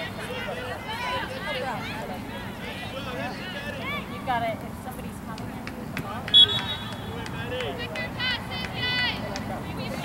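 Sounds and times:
open-air background noise: 0.0 - 10.0.

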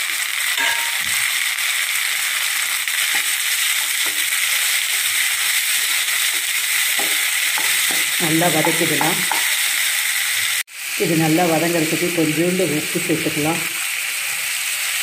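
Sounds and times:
oil sizzling: 0.0 - 15.0.

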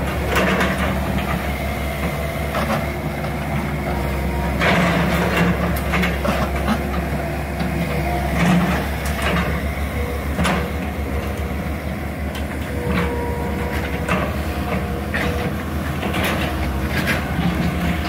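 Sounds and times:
excavator diesel engines: 0.0 - 18.0.

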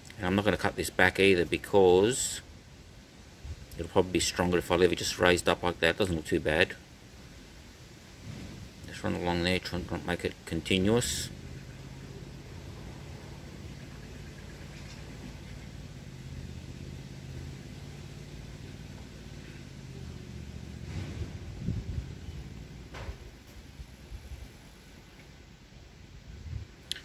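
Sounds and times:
low mechanical hum: 0.0 - 27.0.

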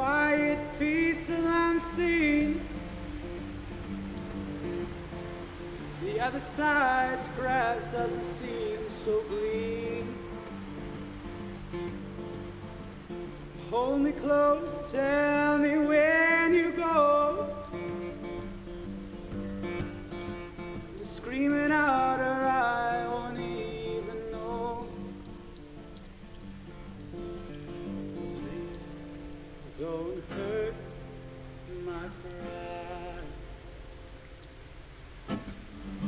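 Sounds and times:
man singing: 0.0 - 2.9, 6.0 - 10.6, 13.6 - 18.2, 20.8 - 25.2, 28.4 - 29.0, 29.6 - 33.6
fingerpicked acoustic guitar: 0.0 - 36.0.

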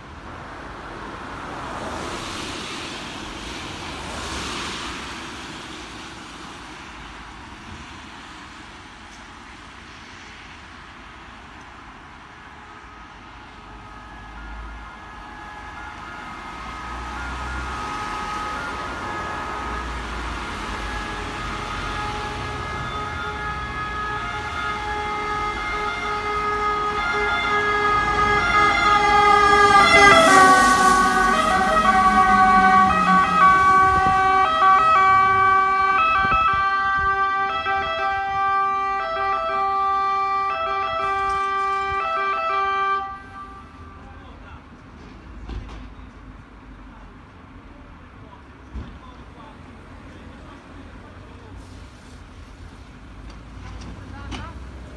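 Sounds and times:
fire engine two-tone siren: 12.4 - 44.3.

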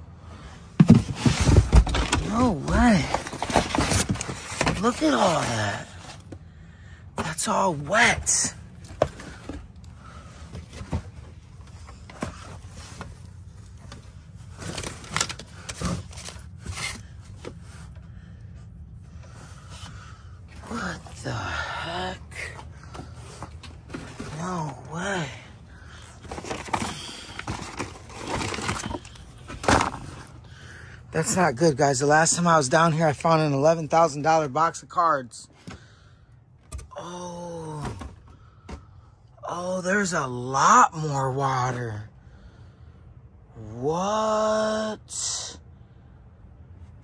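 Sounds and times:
boxes being shifted and rummaged: 0.0 - 6.5, 7.2 - 36.0, 36.6 - 39.0
steady low hum: 0.0 - 47.0
knocks thumps and scrapes: 0.7 - 5.1.

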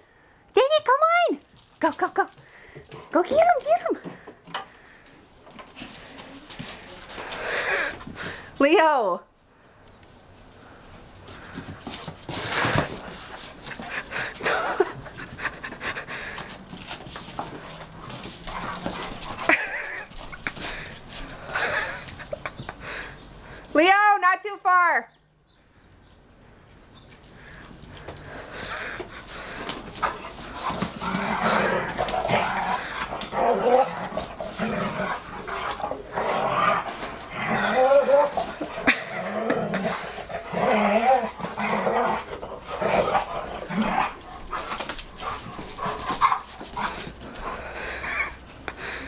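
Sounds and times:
dogs barking and yipping: 11.4 - 23.7, 26.0 - 49.0.

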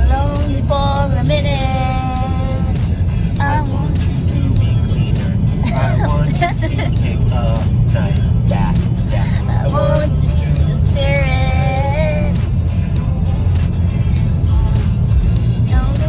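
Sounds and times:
car rumbling: 0.0 - 16.0
song playing: 0.0 - 16.0
man and woman singing along: 3.3 - 12.4.

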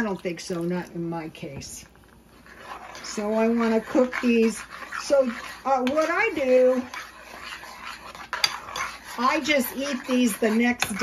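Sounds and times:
spoon scraping saucepan: 0.0 - 11.0.

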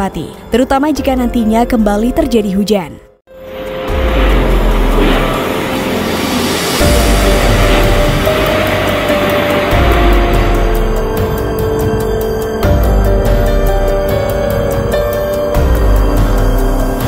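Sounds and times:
background music with low bass: 0.0 - 17.0
sustained music tones: 3.3 - 17.0.

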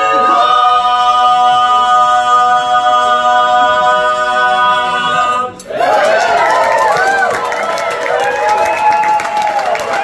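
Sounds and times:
barbershop quartet singing: 0.0 - 5.9.

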